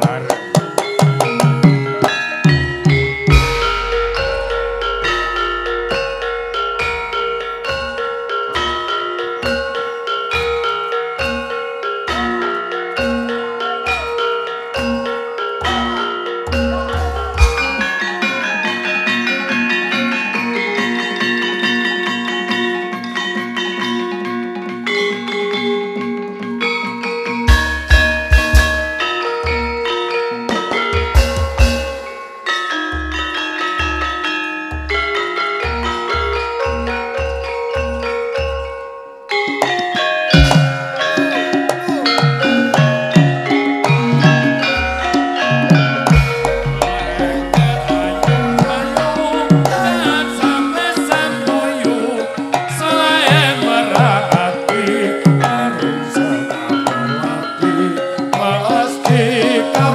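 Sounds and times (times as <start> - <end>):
bronze metallophones ringing melody: 0.0 - 59.9
low gong stroke: 3.3 - 7.6.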